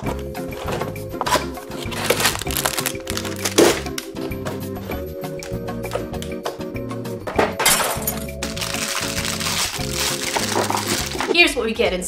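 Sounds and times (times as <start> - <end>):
background music: 0.0 - 12.0
plastic packaging crackling: 1.8 - 4.1, 8.4 - 11.4.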